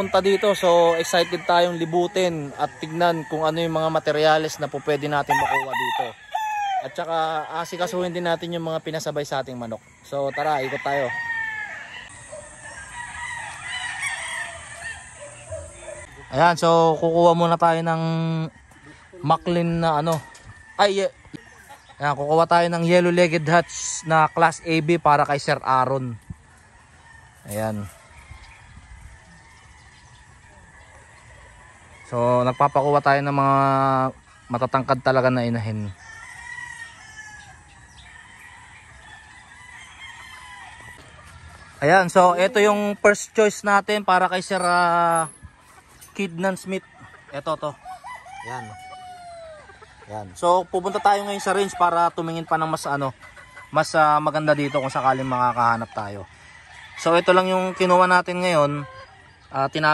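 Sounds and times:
rooster crowing: 0.0 - 17.0, 22.6 - 25.7, 30.5 - 41.2, 46.1 - 59.9
fainter fowl calls: 0.0 - 59.9.

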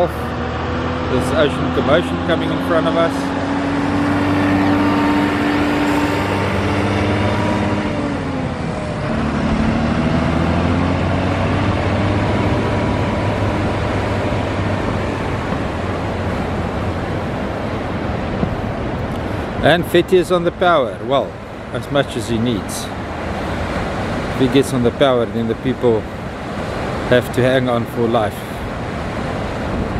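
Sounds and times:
engine running: 0.0 - 29.9
surf: 0.0 - 29.9
wind: 0.0 - 29.9.

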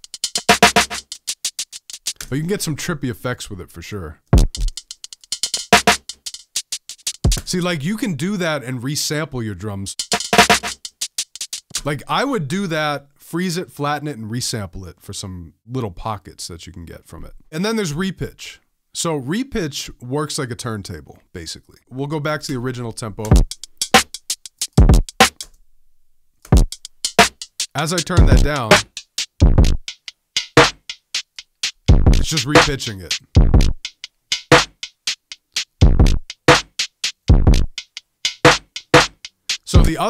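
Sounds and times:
stuttering granular drum loop: 0.0 - 2.2, 4.4 - 7.7, 9.9 - 11.9, 23.2 - 25.5, 26.5 - 40.0.

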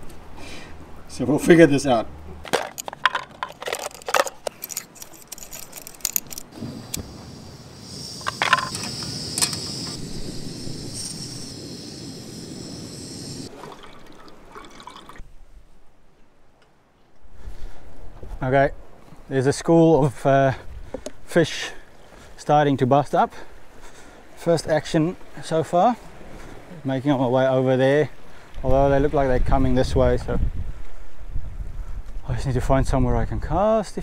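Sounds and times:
gas stove hiss: 6.5 - 13.5
metal kettle and stove clicks: 8.2 - 9.7.

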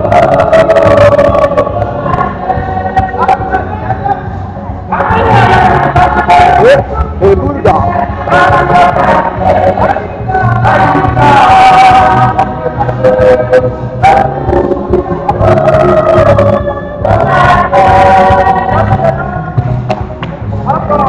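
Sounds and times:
choir singing a gospel song: 0.0 - 21.0
low musical accompaniment: 0.0 - 21.0.

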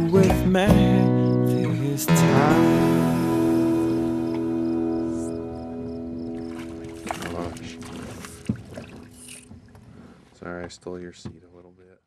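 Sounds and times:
fish splashing in water: 6.4 - 10.2.

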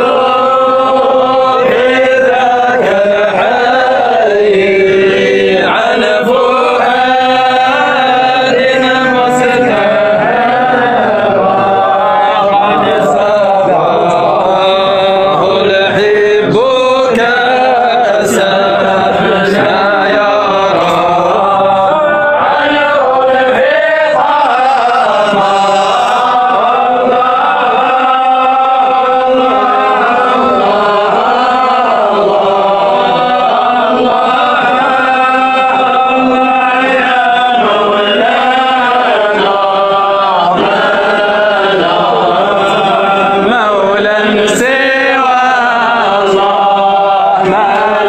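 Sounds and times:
man chanting: 0.0 - 48.0.

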